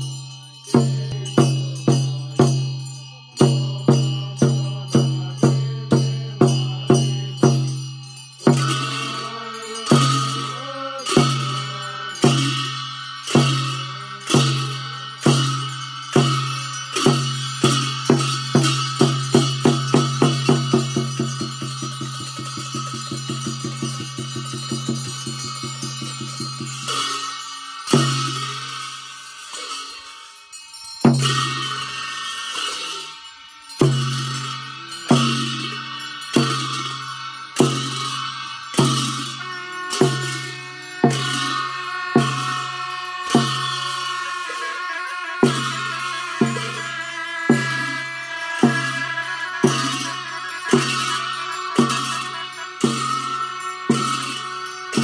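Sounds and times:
frame drum and cymbals roll: 0.0s - 55.0s
loud ringing drum stroke: 0.0s - 55.0s.

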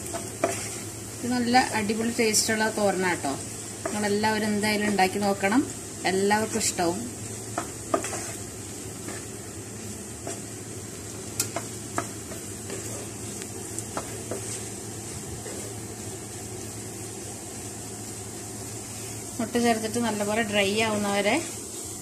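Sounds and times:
spatula tapping pan: 0.0s - 0.8s, 3.8s - 4.2s, 7.5s - 8.4s, 11.3s - 14.6s
spatula scraping pan: 0.0s - 1.0s, 7.5s - 9.4s, 11.4s - 13.2s, 13.8s - 15.9s
frying sizzle: 0.0s - 22.0s.

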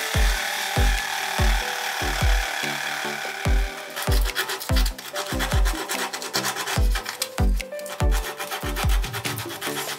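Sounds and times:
jigsaw cutting wood: 0.0s - 9.9s.

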